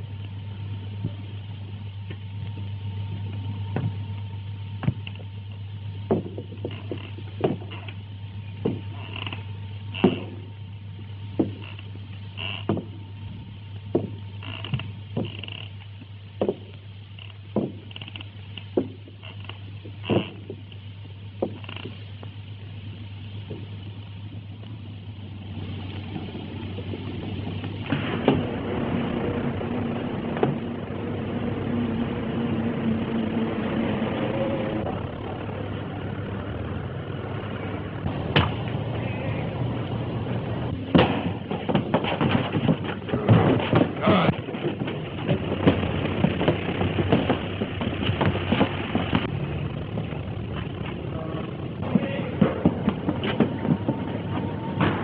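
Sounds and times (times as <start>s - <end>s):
train running: 0.0s - 55.0s
sharp clanks and knocks: 4.8s - 10.6s, 11.3s - 13.0s, 13.9s - 20.8s, 21.4s - 22.3s, 40.7s - 55.0s.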